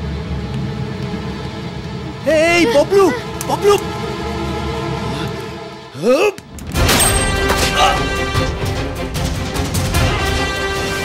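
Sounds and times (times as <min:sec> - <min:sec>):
low rumble: 0:00.0 - 0:05.1.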